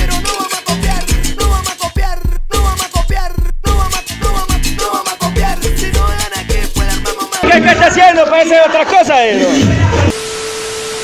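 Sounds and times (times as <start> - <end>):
salsa music: 0.0 - 10.1.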